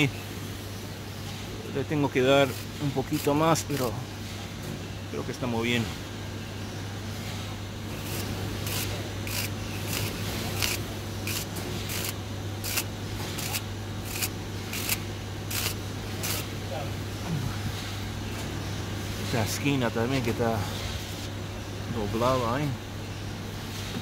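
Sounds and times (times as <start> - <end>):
steady low hum: 0.0 - 24.0
fin comb scraping coil fins: 8.0 - 16.5.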